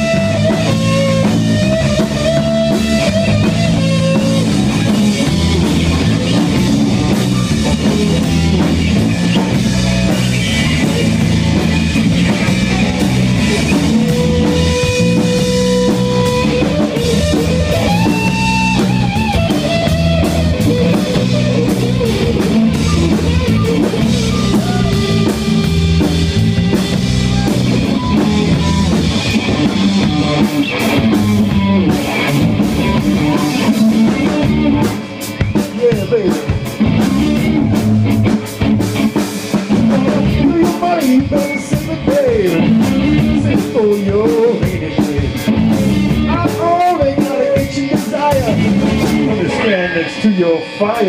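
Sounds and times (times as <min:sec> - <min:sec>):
drum kit: 0:00.0 - 0:51.0
electric guitar lead: 0:00.0 - 0:51.0
second guitar: 0:00.0 - 0:51.0.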